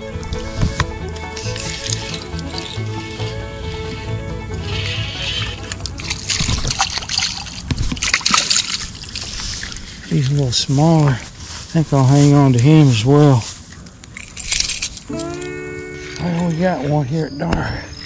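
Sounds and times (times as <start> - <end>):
background music sustained tones: 0.0 - 10.0, 14.1 - 18.0
water splashing and sloshing: 5.3 - 10.4.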